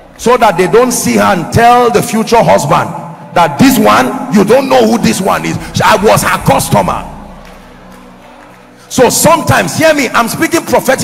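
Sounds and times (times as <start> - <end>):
preacher speaking: 0.2 - 7.3, 8.9 - 11.0.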